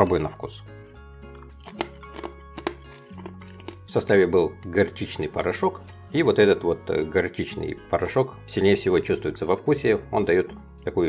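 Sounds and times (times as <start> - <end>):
background music with bass: 0.0 - 11.0
croutons crunching being chewed: 1.2 - 3.9.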